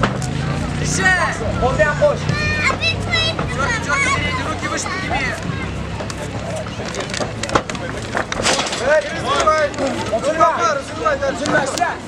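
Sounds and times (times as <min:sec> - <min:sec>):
people shouting: 0:00.9 - 0:06.0.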